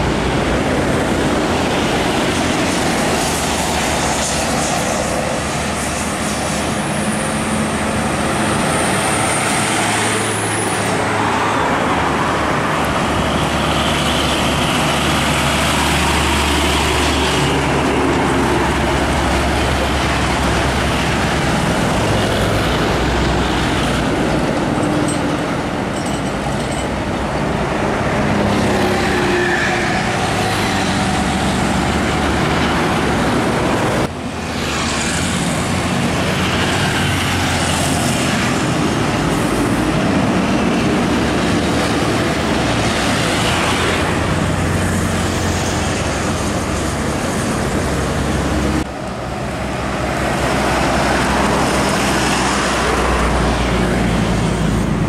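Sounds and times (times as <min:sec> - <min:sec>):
heavy lorries passing: 0:00.0 - 0:55.0.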